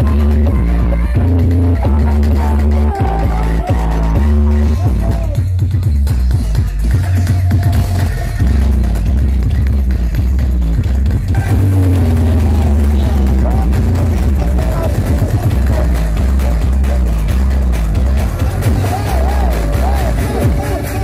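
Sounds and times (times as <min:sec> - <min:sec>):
heavy bass dance music: 0:00.0 - 0:21.0.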